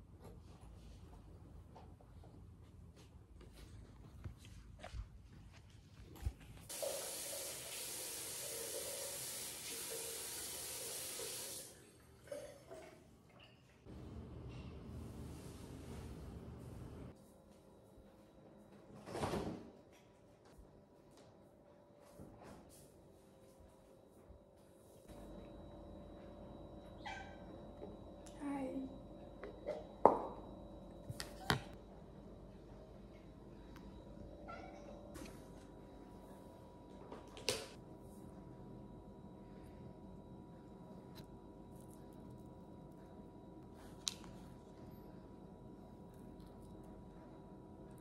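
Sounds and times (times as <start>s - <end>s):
tap water running into sink: 6.7s - 11.8s.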